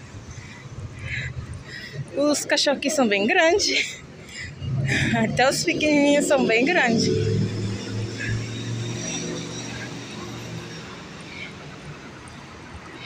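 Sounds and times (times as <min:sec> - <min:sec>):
street noise: 0:00.0 - 0:13.0.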